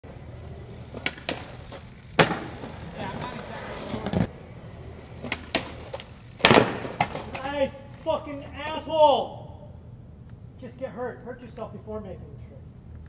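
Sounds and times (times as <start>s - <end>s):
skateboard wheels rolling on concrete: 0.0s - 13.0s
skateboard clacking: 0.1s - 8.8s.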